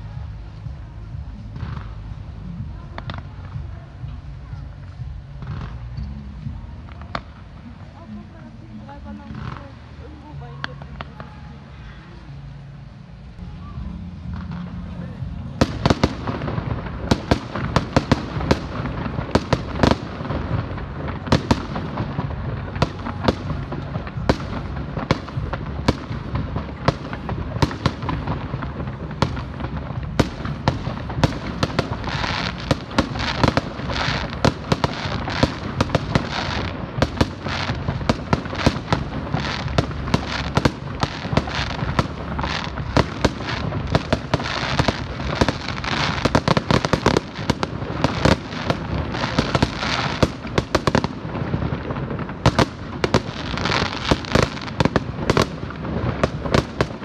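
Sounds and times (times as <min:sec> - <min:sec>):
fireworks bangs and pops: 0:00.0 - 0:11.5, 0:14.2 - 0:57.0
fireworks crackling: 0:00.0 - 0:57.0.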